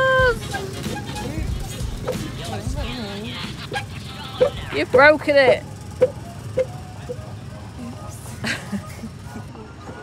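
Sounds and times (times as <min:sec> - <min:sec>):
background music: 0:00.0 - 0:07.0
small engines rumbling: 0:00.0 - 0:10.0.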